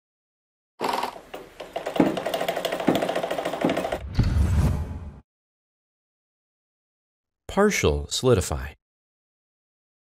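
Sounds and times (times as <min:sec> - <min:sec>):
rapid mechanical ticking: 0:01.6 - 0:04.0.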